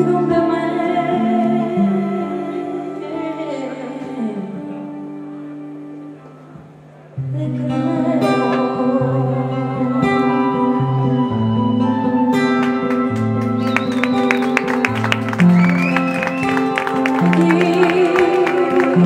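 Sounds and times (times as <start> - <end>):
acoustic guitar playing: 0.0 - 19.0.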